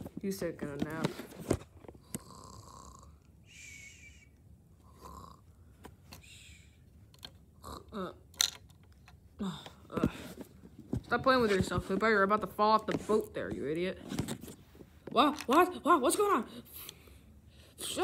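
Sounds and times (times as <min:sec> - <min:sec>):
person imitating snoring: 0:02.0 - 0:03.2, 0:04.8 - 0:05.5, 0:07.6 - 0:08.2
plastic toy bricks clicking: 0:07.1 - 0:07.4, 0:08.3 - 0:09.2.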